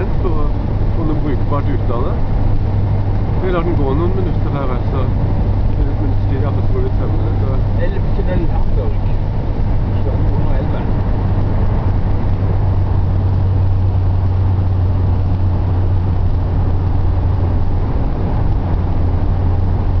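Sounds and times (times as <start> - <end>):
motorhome engine humming: 0.0 - 20.0.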